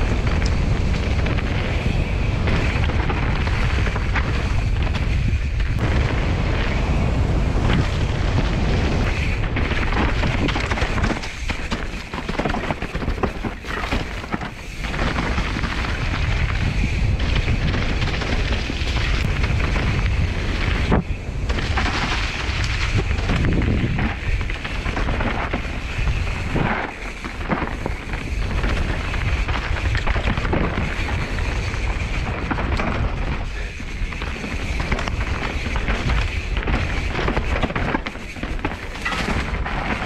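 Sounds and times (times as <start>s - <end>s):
bike knocks and rattles: 0.0s - 40.0s
tyres rolling over dirt and leaves: 0.0s - 40.0s
wind on microphone: 0.0s - 40.0s.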